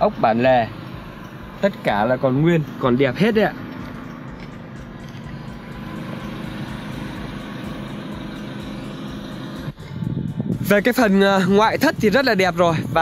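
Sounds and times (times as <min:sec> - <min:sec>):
outdoor rumble and hiss: 0:00.0 - 0:13.0.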